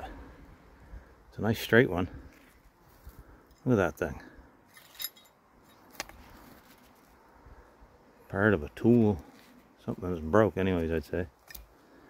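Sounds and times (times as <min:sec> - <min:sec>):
iron nails clinking: 0:04.7 - 0:05.8.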